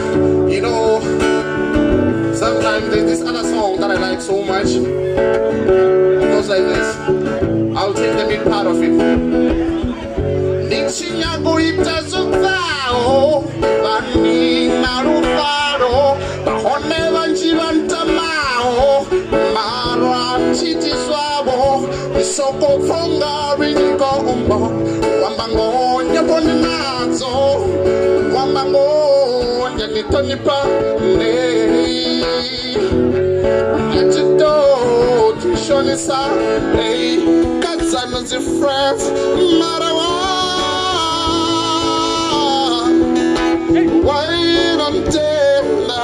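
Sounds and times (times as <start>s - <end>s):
acoustic guitar: 0.0s - 46.0s
man singing: 0.0s - 46.0s.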